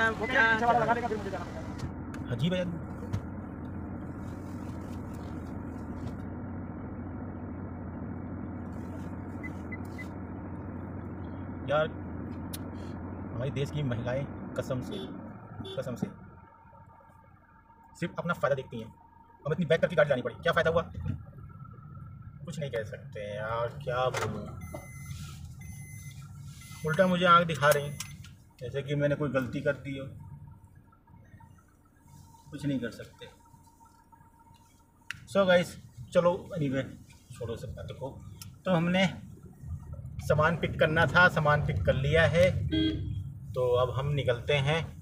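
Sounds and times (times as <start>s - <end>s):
car engine drone: 0.0s - 45.0s
road noise: 0.0s - 45.0s
short high beeps: 24.5s - 27.1s
high-pitched electronic tones: 24.5s - 28.2s.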